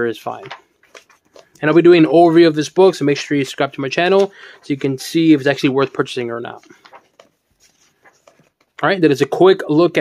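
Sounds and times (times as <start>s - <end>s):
man talking: 0.0s - 0.6s, 1.6s - 6.7s, 8.8s - 10.0s
paper pages rustling: 0.2s - 9.4s.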